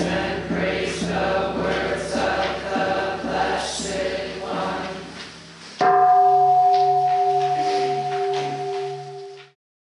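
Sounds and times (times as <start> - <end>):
bell ringing: 5.8 - 9.6.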